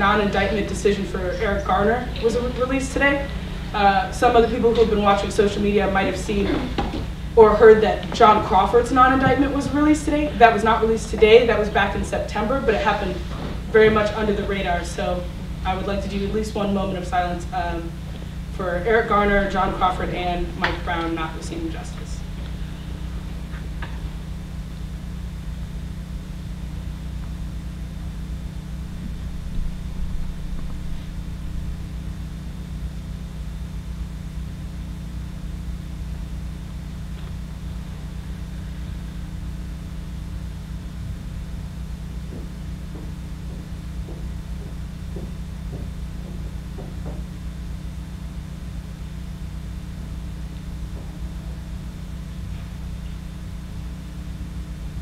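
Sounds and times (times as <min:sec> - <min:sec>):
low hum and rumble: 0:00.0 - 0:55.0.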